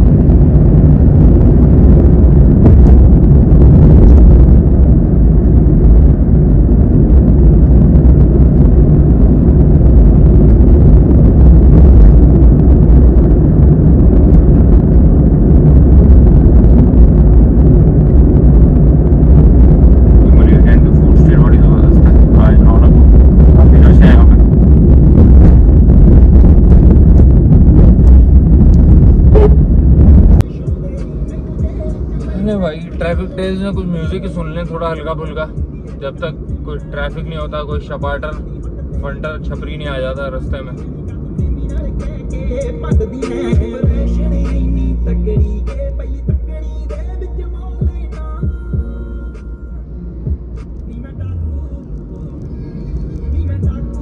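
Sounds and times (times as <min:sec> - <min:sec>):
car interior road and engine noise: 0:00.0 - 0:54.0.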